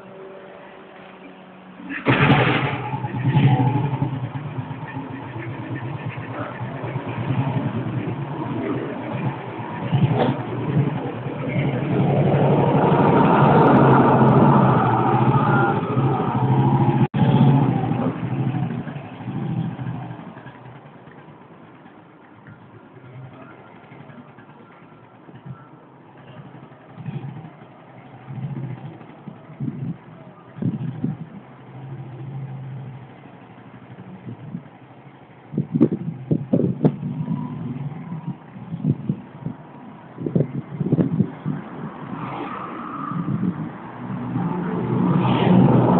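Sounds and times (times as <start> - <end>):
street traffic rumble: 0.0 - 45.9
motorcycle engine revving: 1.8 - 42.5, 43.2 - 45.9.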